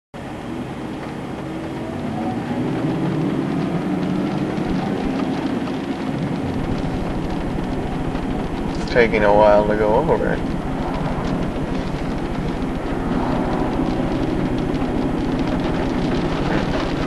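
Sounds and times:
car interior road noise: 0:00.2 - 0:17.0
fast low fluttering: 0:00.2 - 0:17.0.

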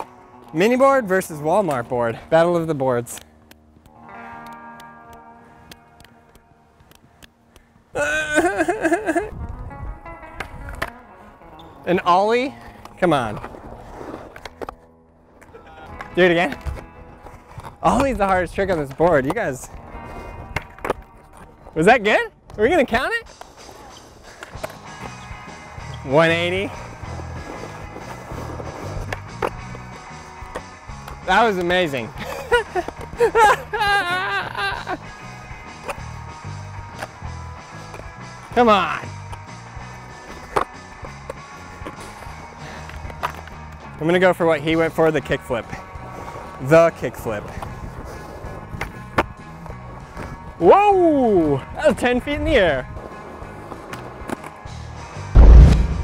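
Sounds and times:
background music: 0:00.0 - 0:03.0, 0:03.6 - 0:18.9, 0:22.6 - 0:56.0
skateboard wheels rolling: 0:08.3 - 0:56.0
skateboard rolling on hard court: 0:12.6 - 0:14.8, 0:23.4 - 0:31.7, 0:47.4 - 0:50.5, 0:52.8 - 0:56.0
background music with bass line: 0:54.8 - 0:56.0.

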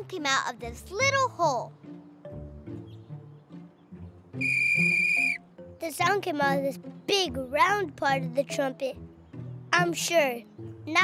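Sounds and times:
soft background music: 0:00.0 - 0:11.0
toy trumpet toot: 0:04.4 - 0:05.4.

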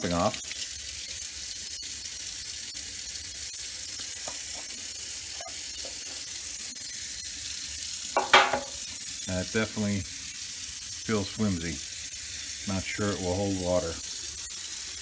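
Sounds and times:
high-pitched hiss: 0:08.2 - 0:10.2, 0:11.0 - 0:15.0.

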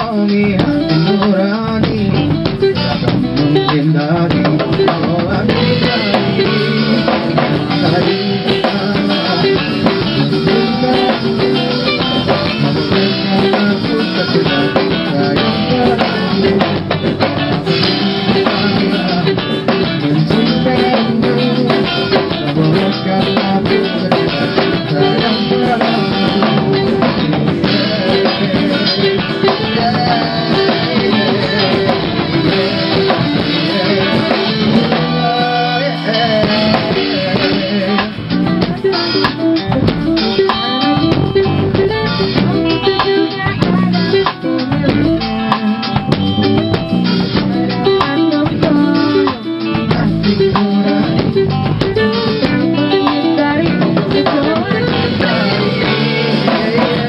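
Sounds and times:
live rock band playing: 0:00.0 - 0:57.0.

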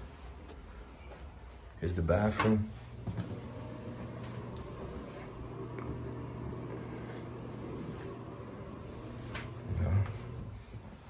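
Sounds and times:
steady low hum: 0:02.7 - 0:11.0.

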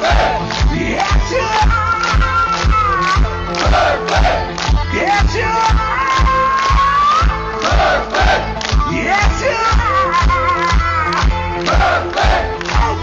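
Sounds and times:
crowd noise: 0:00.0 - 0:13.0
live heavy metal band: 0:00.0 - 0:13.0.

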